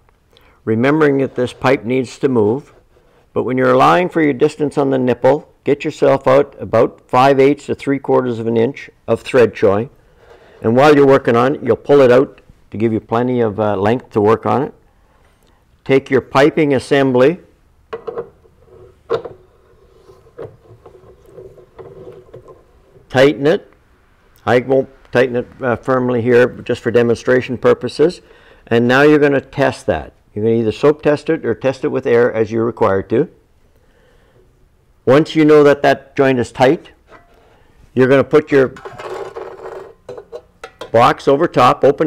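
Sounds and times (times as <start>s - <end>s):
faint steady hum: 0.0s - 42.0s
metal box rubbing and scraping: 18.4s - 23.2s, 38.7s - 40.5s.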